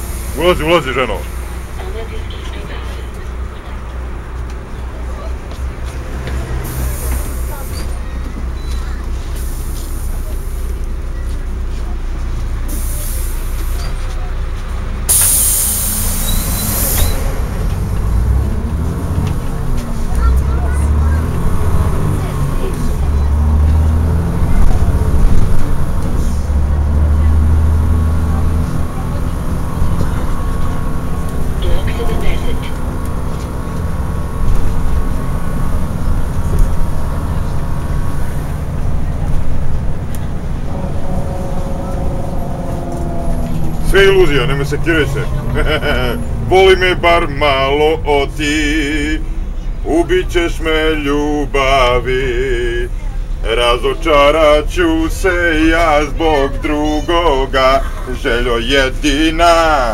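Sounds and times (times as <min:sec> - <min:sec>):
bus engine rumbling: 0:00.0 - 0:59.9
compressed air hiss: 0:15.1 - 0:17.1.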